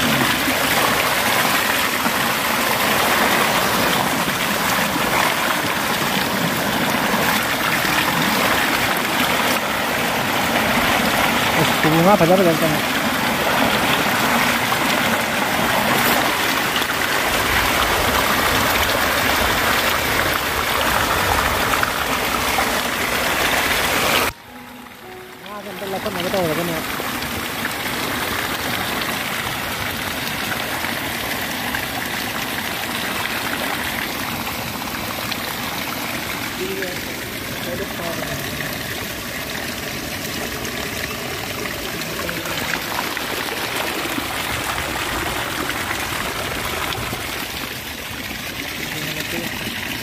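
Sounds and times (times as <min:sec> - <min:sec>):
water gushing and splashing: 0:00.0 - 0:50.0.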